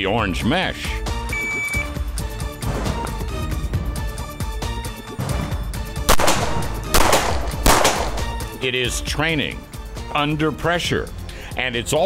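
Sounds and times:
pistol shots echoing: 6.1 - 8.5.

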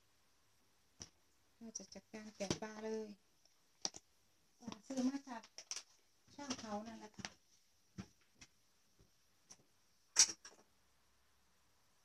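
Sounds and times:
woman speaking: 1.6 - 3.2, 4.6 - 5.5, 6.3 - 7.2.

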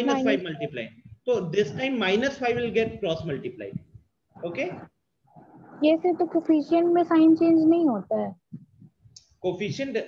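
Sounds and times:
person speaking: 0.0 - 1.0.

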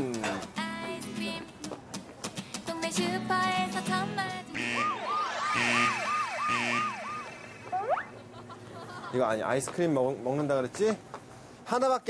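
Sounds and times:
comic siren-like whistling tone: 4.6 - 8.2.

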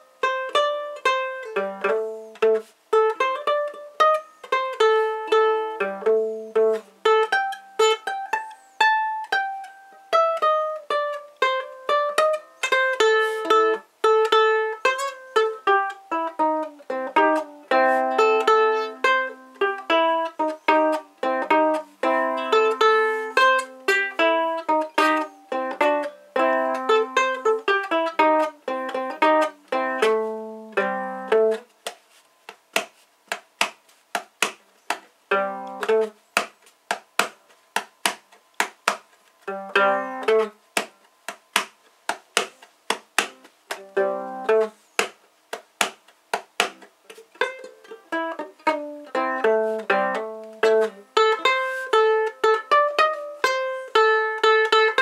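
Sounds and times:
acoustic ukulele playing blues: 0.0 - 55.0.

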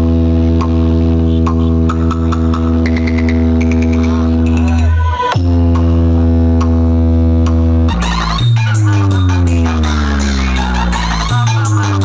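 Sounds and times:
buzzy electronic bass drone: 0.0 - 12.0.

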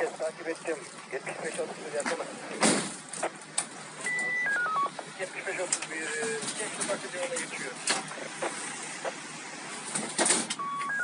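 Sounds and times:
garbled radio voices: 0.0 - 9.2
radio static hiss: 0.0 - 10.1
short beep tones: 4.0 - 4.9, 10.6 - 11.0.

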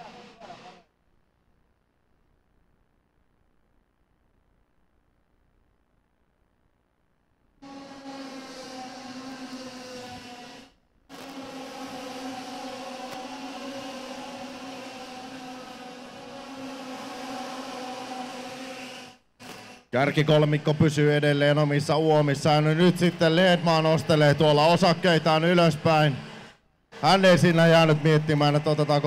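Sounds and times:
kart engines at high revs: 7.6 - 19.9.

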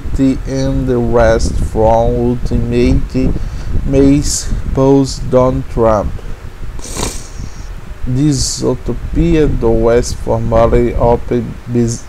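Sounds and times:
microphone noise rumble: 0.0 - 12.0
person breathing or sniffing: 3.4 - 3.8, 6.8 - 7.8.

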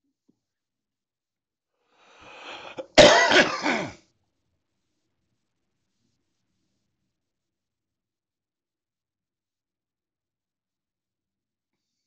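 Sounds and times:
faint breath: 1.8 - 3.0
man coughing: 2.6 - 4.0.

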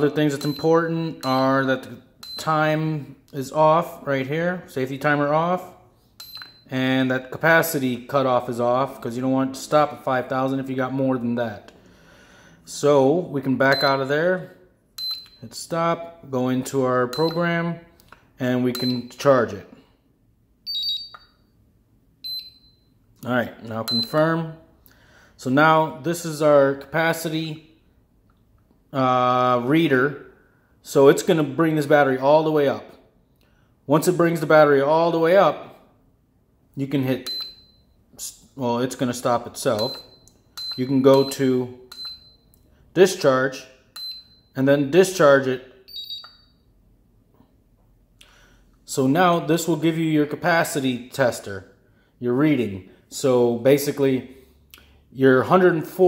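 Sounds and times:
battery charger key beep: 0.2 - 2.6, 6.2 - 6.7, 13.6 - 14.0, 15.0 - 15.4, 17.1 - 17.6, 18.7 - 19.2, 20.6 - 21.4, 22.2 - 23.0, 23.8 - 24.3, 37.2 - 38.0, 39.7 - 42.5, 44.0 - 44.5, 45.9 - 46.6.

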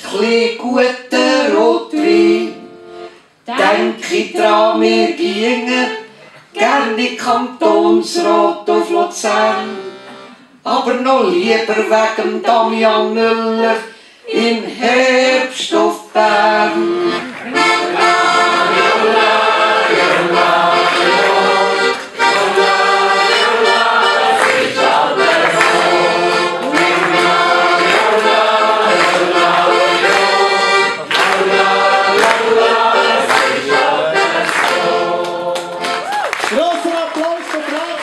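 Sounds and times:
accordion playing a tune: 1.4 - 6.1, 7.7 - 10.6, 16.2 - 36.0.

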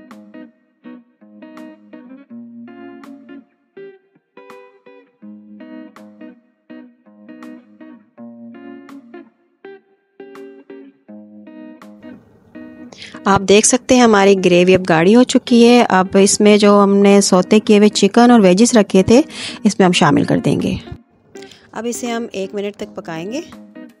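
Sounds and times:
plucked guitar chords: 0.0 - 24.0.

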